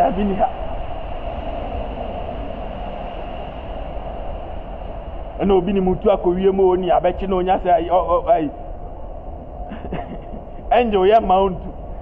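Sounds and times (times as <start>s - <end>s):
constant hum: 0.0s - 12.0s
low rumbling background noise: 0.0s - 12.0s.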